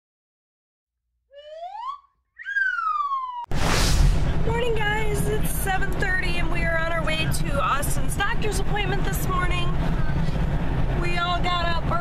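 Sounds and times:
gliding whistle sound effect: 1.3s - 4.0s
sudden rush of noise: 3.5s - 5.6s.

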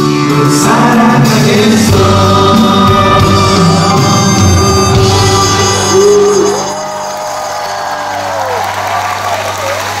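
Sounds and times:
live band final chord: 0.2s - 6.9s
audience applauding and cheering: 3.6s - 10.0s.

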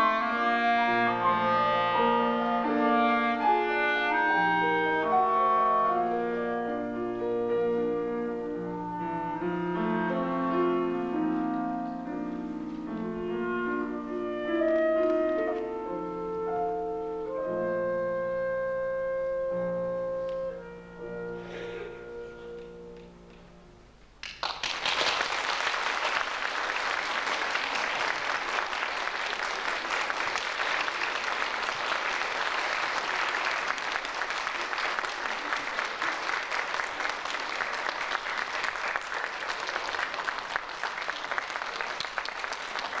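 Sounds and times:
clarinet and piano chord: 0.0s - 23.3s
audience applauding: 24.2s - 43.0s.

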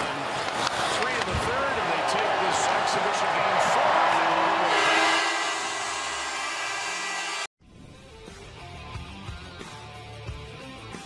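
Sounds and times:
arena crowd cheering: 0.0s - 7.5s
steady horn: 4.6s - 7.5s.

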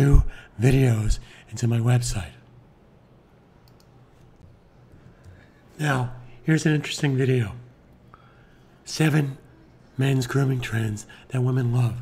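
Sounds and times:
steady low hum: 0.0s - 12.0s
computer mouse clicks: 3.6s - 5.4s.

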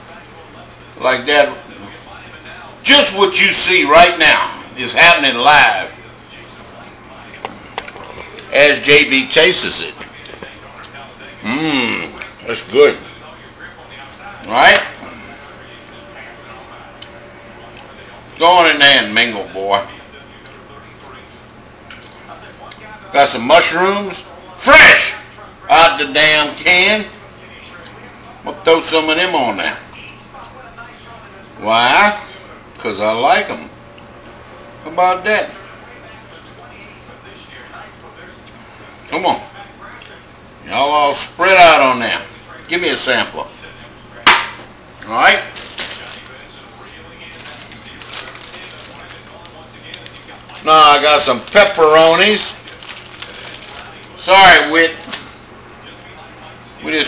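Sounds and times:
steady low hum: 0.0s - 57.0s
plastic packet crinkling: 45.5s - 46.4s, 47.2s - 54.3s.

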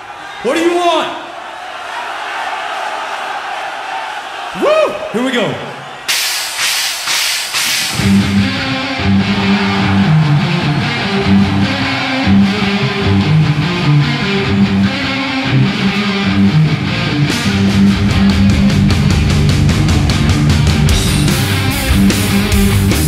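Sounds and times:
cymbal strokes counting in: 6.1s - 8.6s
distorted electric guitars: 6.1s - 23.0s
drums: 6.1s - 23.0s
bass guitar riff: 7.9s - 23.0s.

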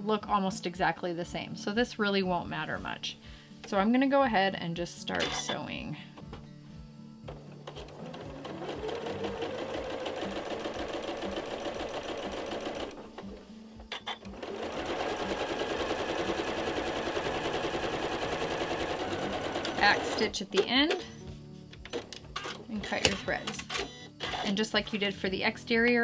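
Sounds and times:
electric sewing machine stitching: 7.3s - 13.3s, 14.0s - 20.3s.

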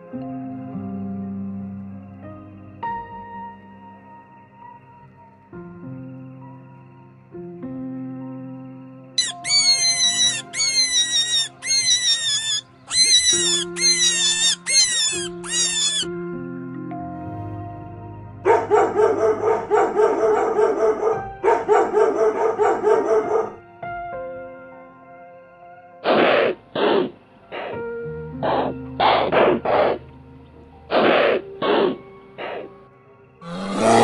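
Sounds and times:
background music: 0.0s - 34.0s
high squealing animal calls: 9.2s - 16.1s, 33.4s - 34.0s
rough pulsed animal calls: 9.2s - 16.1s, 33.4s - 34.0s.

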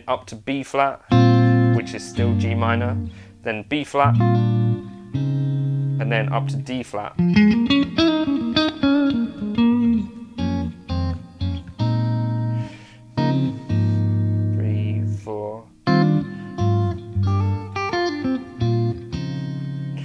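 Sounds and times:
electric guitar chords ringing: 1.1s - 20.0s
guitar sliding note: 1.1s - 20.0s.

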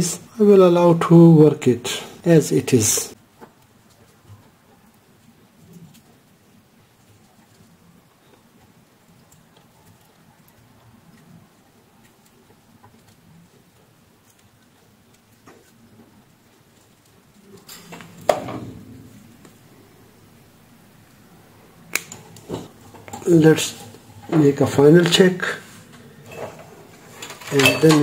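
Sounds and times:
wire leads scratching and clicking: 2.9s - 18.3s, 21.8s - 28.0s.

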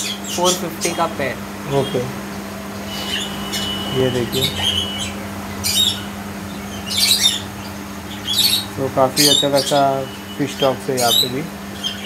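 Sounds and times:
bird chirping: 0.0s - 12.0s
steady low hum: 0.0s - 12.0s.

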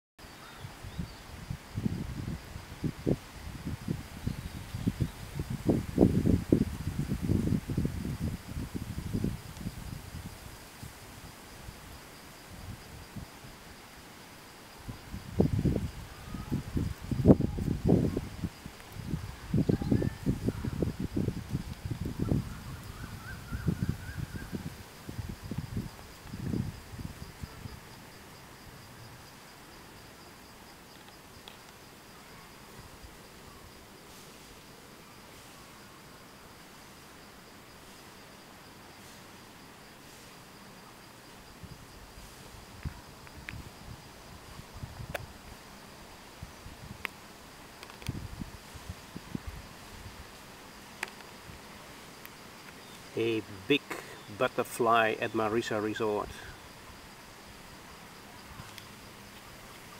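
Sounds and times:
high-pitched insect call: 0.2s - 59.9s
wind buffeting microphone: 0.6s - 13.6s, 14.8s - 29.3s, 41.6s - 45.7s, 46.3s - 47.1s, 47.8s - 50.4s.

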